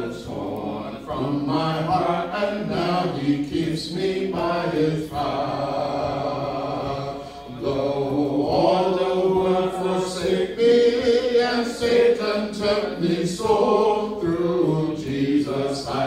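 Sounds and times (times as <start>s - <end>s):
voices singing a hymn a cappella: 0.0s - 16.0s.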